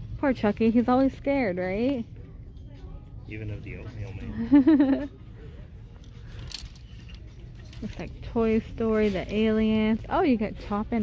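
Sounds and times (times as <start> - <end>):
store background noise: 0.0 - 11.0
clothes hangers clinking on rack: 6.0 - 10.4.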